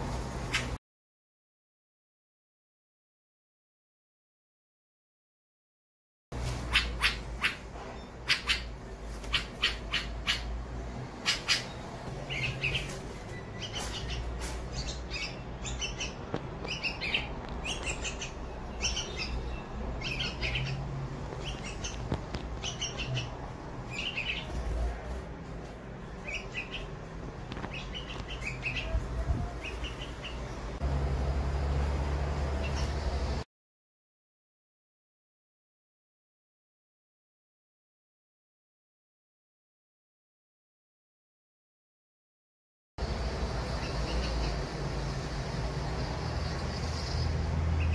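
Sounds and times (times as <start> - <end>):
fledgling birds squawking: 6.5 - 24.7.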